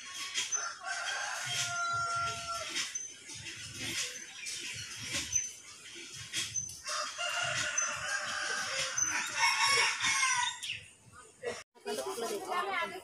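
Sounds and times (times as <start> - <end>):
rooster crowing: 0.6 - 2.7, 6.8 - 10.6.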